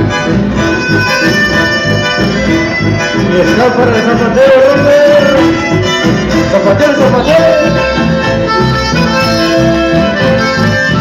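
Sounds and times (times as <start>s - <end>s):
accordion melody: 0.0s - 11.0s
guitars: 0.0s - 11.0s.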